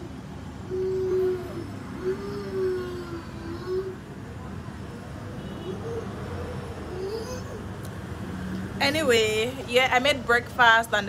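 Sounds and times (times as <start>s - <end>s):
baby vocalizing long notes: 0.0s - 4.2s, 5.6s - 7.8s.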